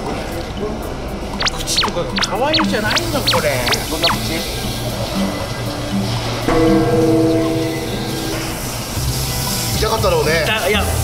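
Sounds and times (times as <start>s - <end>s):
background music: 1.0s - 11.0s.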